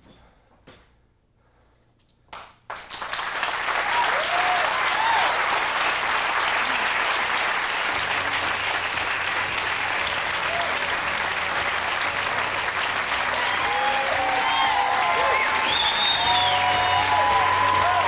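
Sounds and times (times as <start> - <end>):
audience applauding: 2.7 - 18.0
cheering shouts: 3.7 - 18.0.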